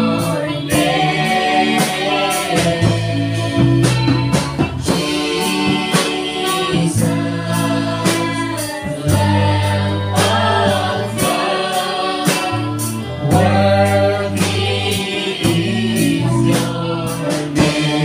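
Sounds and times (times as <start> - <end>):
choir singing worship song: 0.0 - 18.0
instrumental accompaniment with beat: 0.0 - 18.0.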